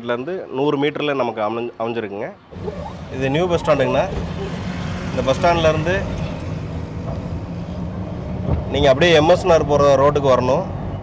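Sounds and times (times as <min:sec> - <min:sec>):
road noise: 0:01.3 - 0:11.0
car engine hum: 0:02.5 - 0:09.4.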